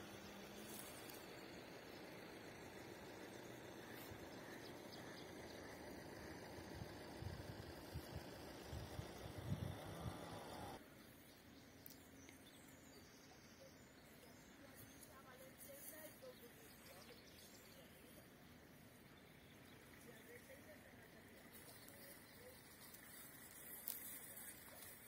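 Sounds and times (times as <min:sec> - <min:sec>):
low steady hiss: 0:00.0 - 0:25.0.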